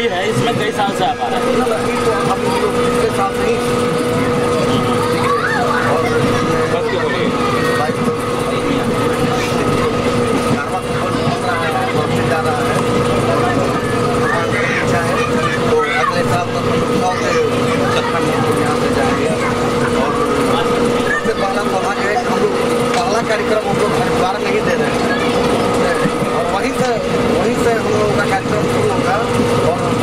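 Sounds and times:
people talking: 0.0 - 30.0
train rumbling: 0.0 - 30.0.

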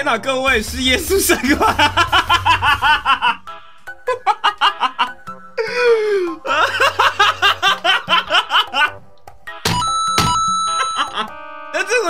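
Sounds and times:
man laughing hard: 1.3 - 9.0, 10.8 - 11.3.

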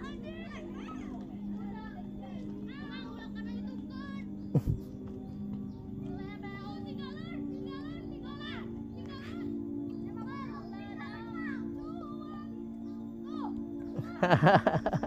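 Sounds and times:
background music: 0.0 - 15.0
children calling and chattering: 0.0 - 15.0.

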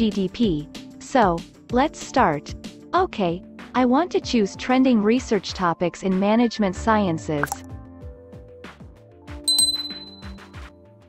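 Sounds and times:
background music with beat: 7.4 - 11.0
notification bell ding: 9.5 - 10.4.

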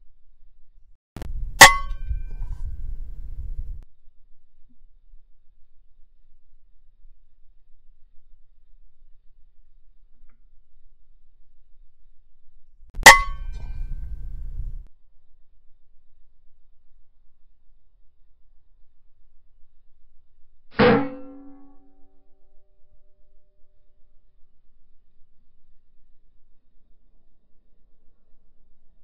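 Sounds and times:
low rumble: 1.2 - 3.8, 13.0 - 14.9.

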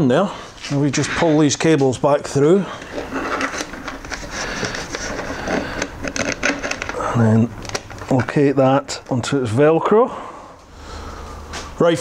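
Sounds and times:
cables scraping on plastic panels: 2.7 - 7.0.

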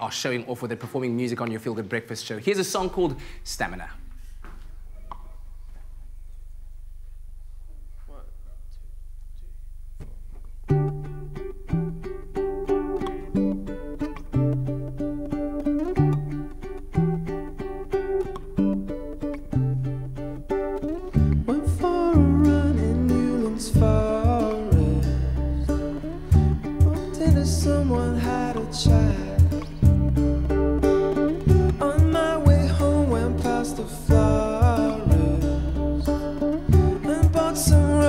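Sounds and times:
bass notes: 2.8 - 38.0
picked guitar notes: 8.9 - 38.0.

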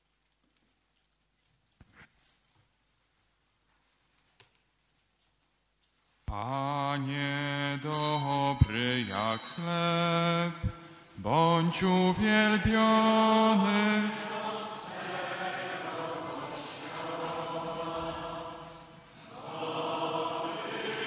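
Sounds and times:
man singing a hymn: 6.3 - 21.0.

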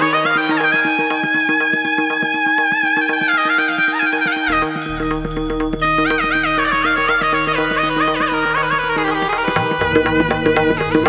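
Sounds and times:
electronic keyboard melody: 0.0 - 11.0
held drone notes: 0.0 - 11.0.

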